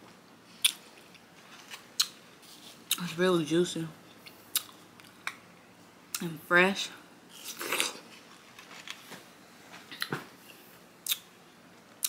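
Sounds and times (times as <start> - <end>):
mouth clicks chewing watermelon: 11.0 - 11.3.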